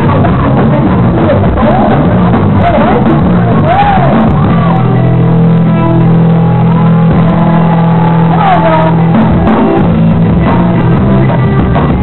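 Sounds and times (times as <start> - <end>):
live punk-ska band playing: 0.0 - 12.0.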